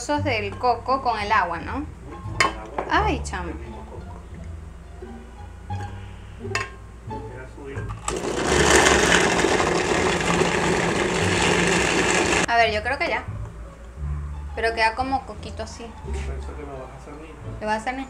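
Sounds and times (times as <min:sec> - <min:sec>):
coconut pieces clattering into jar: 0:08.0 - 0:12.4
blender grinding: 0:08.0 - 0:12.5.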